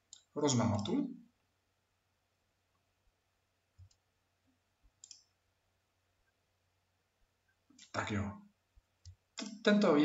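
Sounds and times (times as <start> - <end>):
computer mouse click: 0.1 - 1.0, 3.8 - 4.0, 5.0 - 5.4, 9.0 - 9.6.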